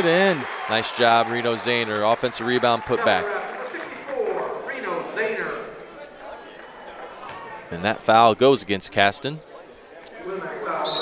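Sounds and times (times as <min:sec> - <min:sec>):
crowd voices in gymnasium: 0:00.0 - 0:11.0.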